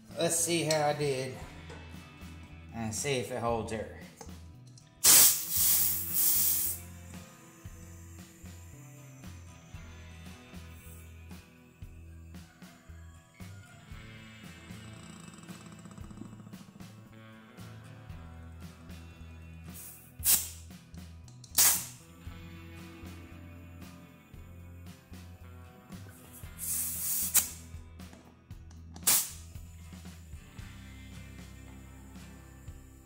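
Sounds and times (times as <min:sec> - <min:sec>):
compressed air hissing: 0:05.0 - 0:11.9, 0:19.7 - 0:20.8, 0:21.5 - 0:24.0, 0:25.9 - 0:27.8, 0:29.0 - 0:33.0.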